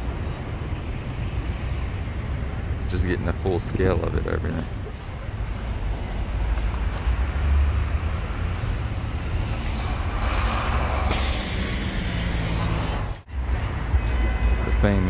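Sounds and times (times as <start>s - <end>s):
passing vehicles rumble: 0.0s - 15.0s
loud hiss: 10.9s - 13.0s.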